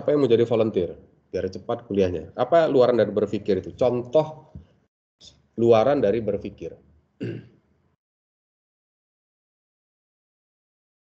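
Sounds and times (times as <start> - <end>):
man clearing his throat: 7.2 - 7.6.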